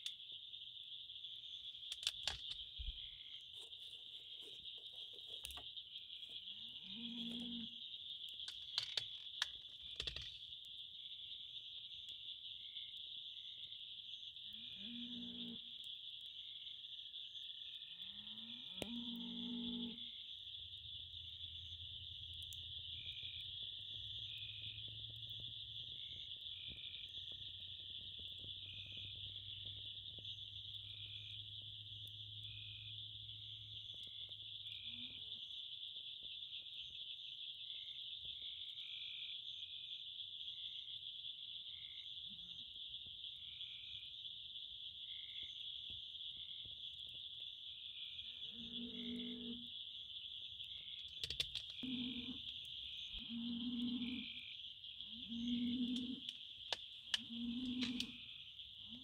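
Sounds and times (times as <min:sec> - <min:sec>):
frog croaking: 0:00.0 - 0:03.8, 0:04.4 - 0:11.2, 0:11.8 - 0:22.0, 0:22.7 - 0:59.0
insects trilling: 0:00.0 - 0:59.0
wood fire crackling: 0:01.8 - 0:02.8, 0:03.5 - 0:06.4, 0:08.2 - 0:10.7.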